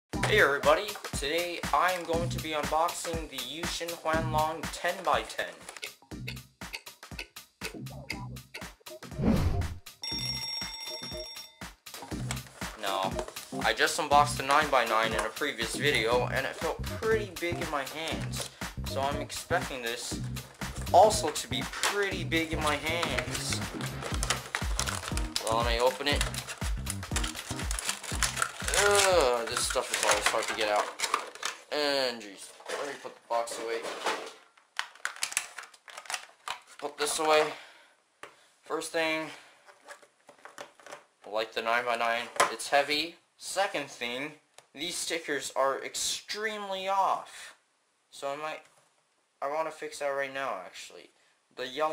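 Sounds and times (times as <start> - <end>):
music with a beat: 0.1 - 5.2, 5.8 - 9.2, 11.0 - 29.2
plastic case clicking and crackling: 5.4 - 5.9, 23.0 - 31.7, 32.6 - 37.3, 39.7 - 41.1
alarm clock bell ringing: 10.0 - 11.7.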